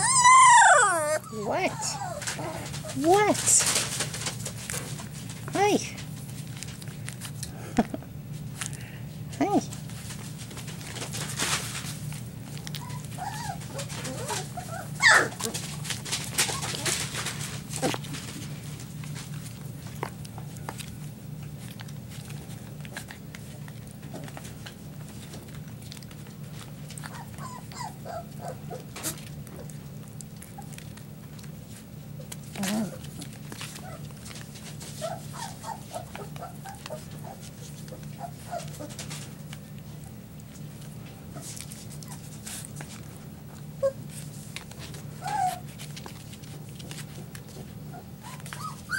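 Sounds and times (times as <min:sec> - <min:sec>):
puppy yelping: 0:00.0 - 0:03.6, 0:12.6 - 0:18.2, 0:26.9 - 0:29.8, 0:32.2 - 0:39.2, 0:43.8 - 0:44.2, 0:44.8 - 0:45.9, 0:47.5 - 0:48.9
puppy whimpering and squeaking: 0:00.0 - 0:03.7, 0:12.6 - 0:15.7, 0:16.3 - 0:17.1, 0:26.9 - 0:29.7, 0:32.5 - 0:39.2, 0:43.8 - 0:44.2, 0:44.8 - 0:46.0, 0:46.8 - 0:48.9
clicks of mouths and paws: 0:01.9 - 0:08.9, 0:09.7 - 0:48.9.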